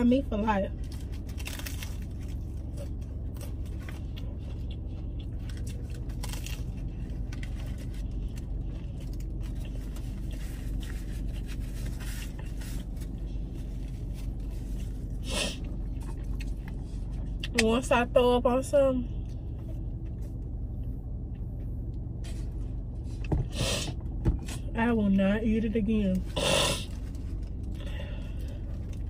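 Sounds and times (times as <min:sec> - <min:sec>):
low hum inside car: 0:00.0 - 0:29.0
paper wrapper rustling: 0:00.8 - 0:04.1.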